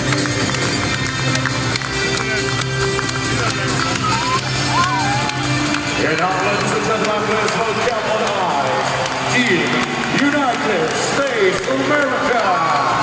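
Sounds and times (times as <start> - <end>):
large crowd noise: 0.0 - 13.0
music over arena loudspeakers: 0.0 - 13.0.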